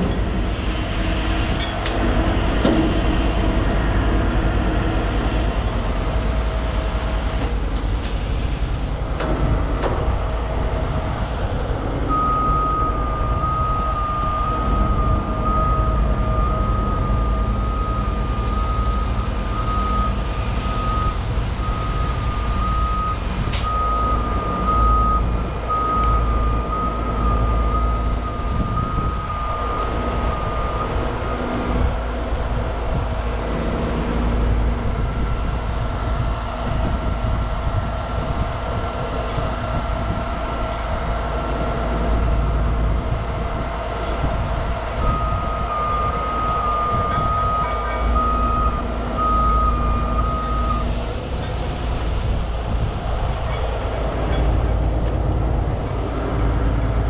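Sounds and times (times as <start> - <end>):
diesel engine running: 0.0 - 57.0
pulsed warning beeps: 12.1 - 31.6, 45.0 - 51.6.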